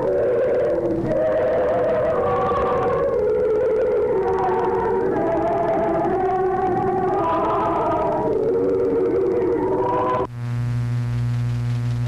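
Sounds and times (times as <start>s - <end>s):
church choir chanting: 0.0s - 10.2s
low electrical buzz: 0.0s - 12.0s.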